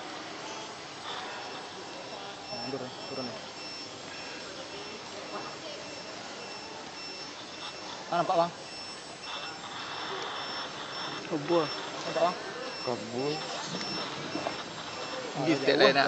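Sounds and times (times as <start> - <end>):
outdoor background noise: 0.0 - 16.0
high electronic beep: 1.2 - 16.0.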